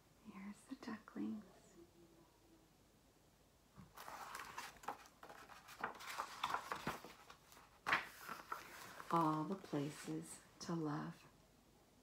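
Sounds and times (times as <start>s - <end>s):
book pages rustling: 3.8s - 10.3s.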